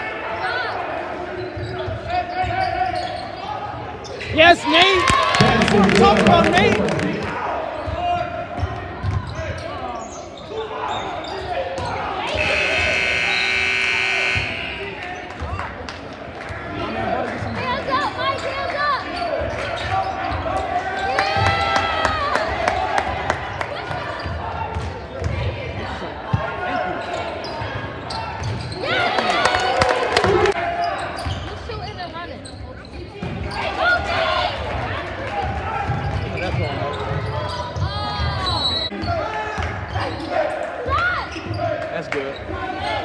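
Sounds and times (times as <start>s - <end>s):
people shouting in a hall: 0.0s - 2.8s, 37.9s - 41.8s
basketball bouncing on wooden court: 5.1s - 7.2s.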